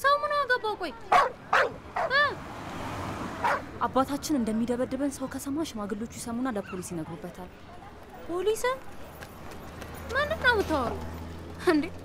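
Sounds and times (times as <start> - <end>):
sharp bark-like animal calls: 1.1 - 2.2, 3.4 - 3.7.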